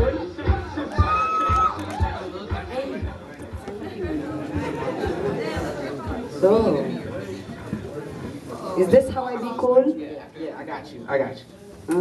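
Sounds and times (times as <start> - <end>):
voices chattering in a hall: 0.0 - 12.0.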